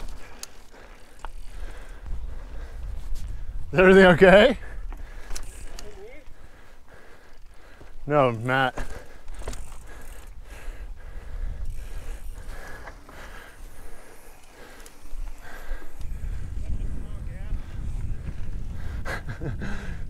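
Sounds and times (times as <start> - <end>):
bike clicks and rattles: 0.0 - 20.0
wind rumbling on microphone: 1.2 - 7.7, 9.1 - 20.0.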